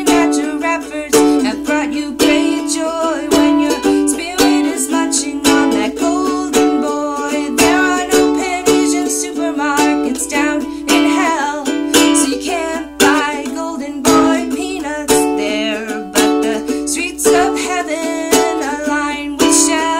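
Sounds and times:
ukulele strumming: 0.0s - 19.9s.

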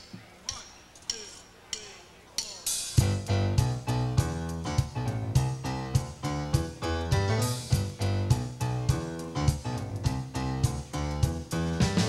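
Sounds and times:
drumstick count-in ticks: 0.0s - 11.5s
live band playing: 2.6s - 12.0s.

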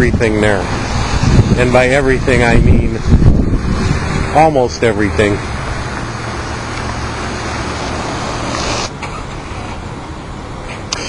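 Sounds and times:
car engine and tyres passing: 0.1s - 11.0s.

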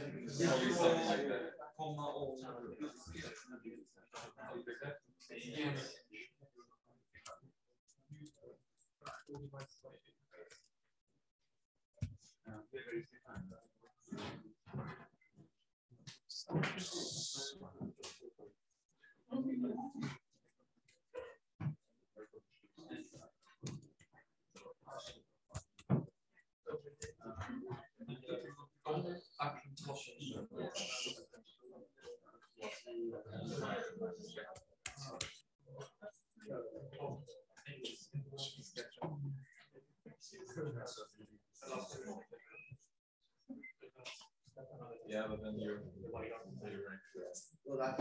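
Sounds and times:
man speaking: 0.0s - 6.4s, 26.7s - 39.0s, 44.0s - 48.0s.

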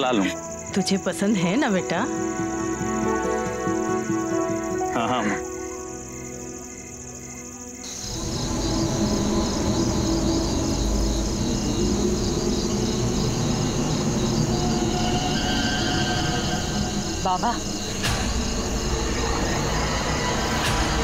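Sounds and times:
crickets chirping: 0.0s - 21.0s
soft background music: 0.0s - 21.0s
dark rumbling drone: 7.8s - 21.0s.

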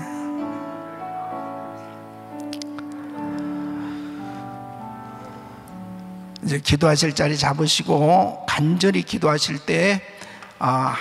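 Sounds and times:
sustained keyboard chords: 0.0s - 7.7s.

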